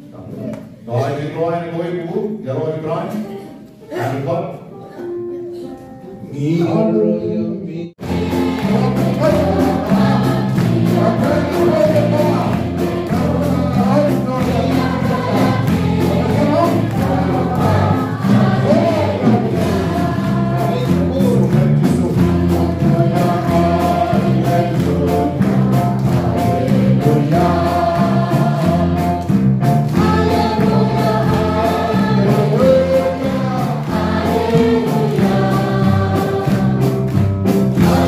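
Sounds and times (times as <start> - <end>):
congregation singing a hymn: 6.3 - 38.0
hands clapping: 8.0 - 38.0.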